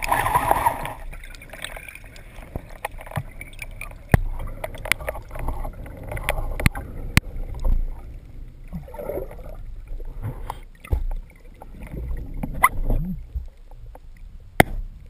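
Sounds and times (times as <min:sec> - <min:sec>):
underwater rumble: 0:00.0 - 0:15.0.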